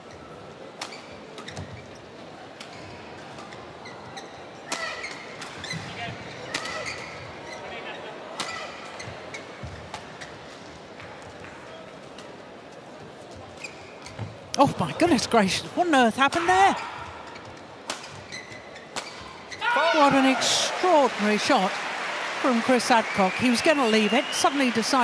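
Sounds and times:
murmur of indoor arena: 0:00.0 - 0:25.0.

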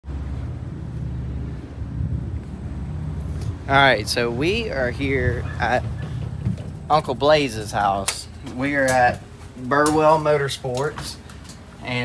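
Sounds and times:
engine running with low rumble: 0:00.0 - 0:12.0.

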